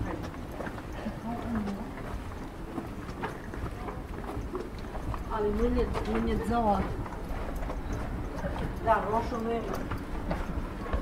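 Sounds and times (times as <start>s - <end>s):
footsteps on stone path: 0.0s - 11.0s.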